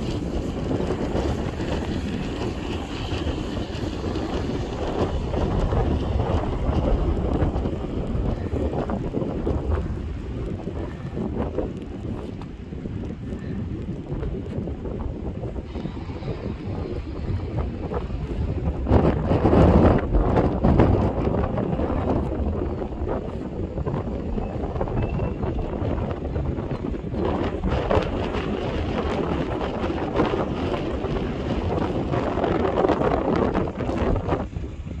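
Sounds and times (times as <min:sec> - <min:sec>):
wind buffeting microphone: 0:00.0 - 0:35.0.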